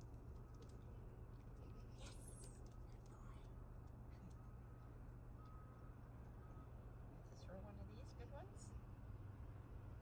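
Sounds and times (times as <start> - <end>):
faint steady beeps: 4.3 - 6.9.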